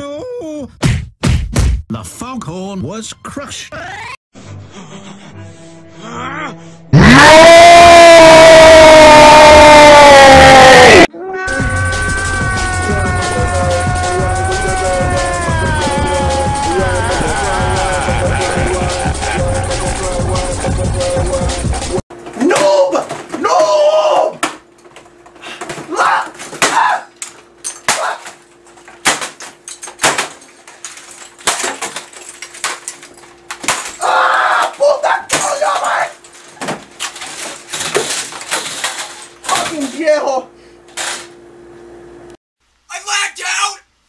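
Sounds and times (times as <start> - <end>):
man shouting: 6.2 - 19.5, 22.4 - 24.4, 25.9 - 27.1, 34.0 - 36.2, 42.9 - 43.9
knocks and crashes of objects hit: 29.0 - 34.0.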